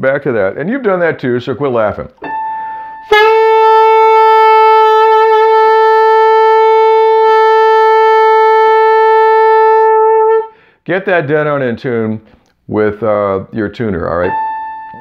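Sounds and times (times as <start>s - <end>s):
tenor saxophone long note: 3.0s - 10.6s.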